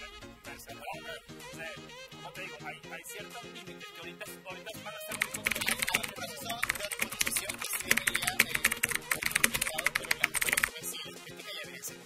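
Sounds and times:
faint background music: 0:00.0 - 0:12.0
rapid keyboard typing: 0:05.0 - 0:10.8.

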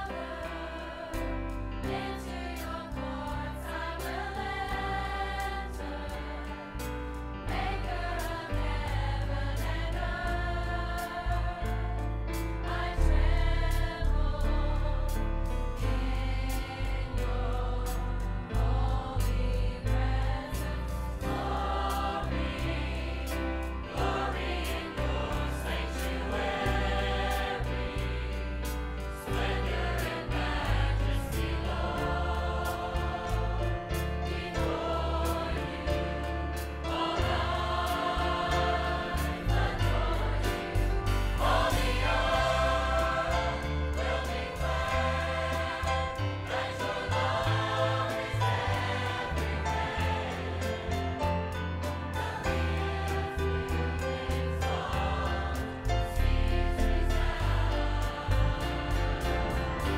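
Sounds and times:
choir singing gospel song: 0:00.0 - 0:59.9.

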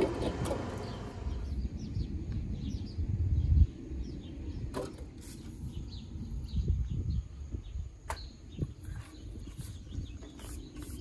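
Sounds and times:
low wind rumble on microphone: 0:00.0 - 0:11.0
small birds chirping: 0:00.1 - 0:11.0.

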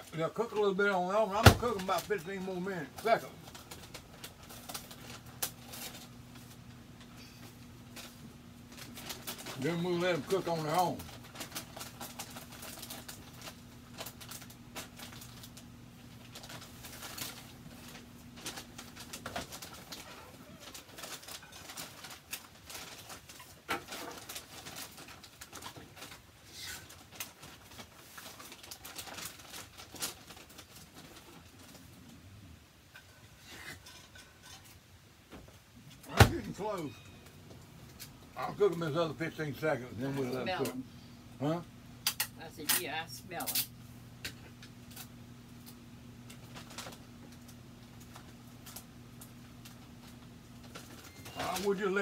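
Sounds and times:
microwave oven humming: 0:00.0 - 0:52.0.

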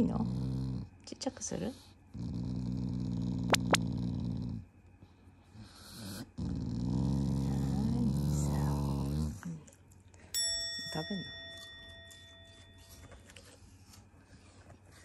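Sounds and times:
dog growling: 0:00.0 - 0:01.0, 0:01.7 - 0:04.8, 0:05.6 - 0:09.8.

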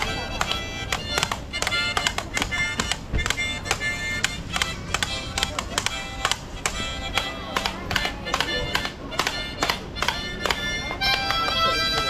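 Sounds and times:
harmonica chords: 0:00.0 - 0:12.0.

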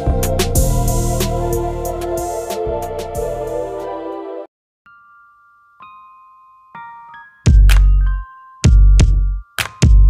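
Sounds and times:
background music: 0:00.0 - 0:10.0
soft bell-like chimes: 0:04.9 - 0:10.0.

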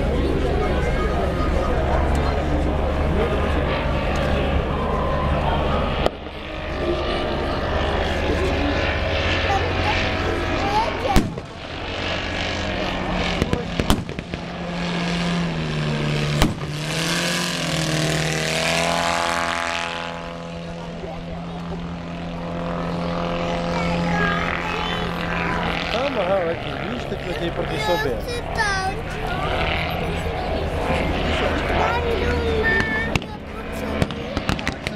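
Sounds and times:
crowd voices: 0:00.0 - 0:34.9
propeller aircraft engine droning: 0:00.0 - 0:34.9
sharp cracks: 0:11.1 - 0:11.6, 0:13.3 - 0:14.5, 0:16.3 - 0:17.3, 0:34.0 - 0:34.9.

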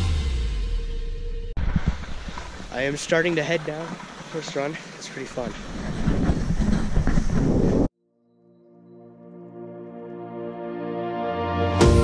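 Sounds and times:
wind rushing over microphone: 0:05.3 - 0:07.9
background music with held chords: 0:08.6 - 0:12.0.

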